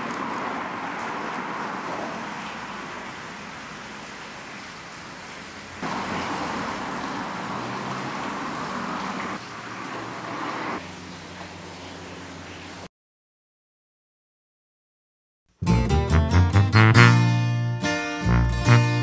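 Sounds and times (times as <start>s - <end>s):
outdoor hiss: 0.0s - 12.9s.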